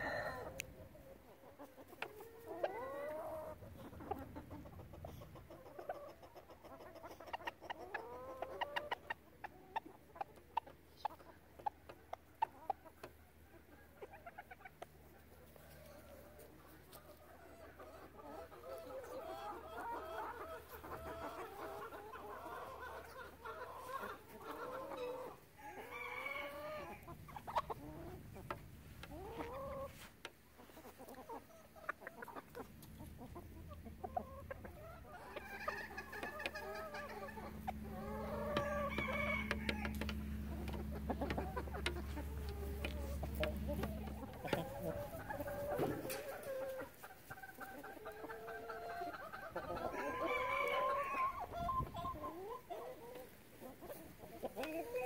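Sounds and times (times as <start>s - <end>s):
chickens clucking and calling: 0.0s - 55.0s
low steady hum: 32.4s - 46.4s.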